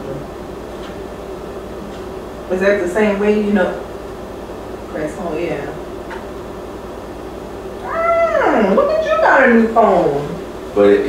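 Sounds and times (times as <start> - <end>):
low steady hum: 0.0 - 11.0
cat meowing: 7.8 - 8.8.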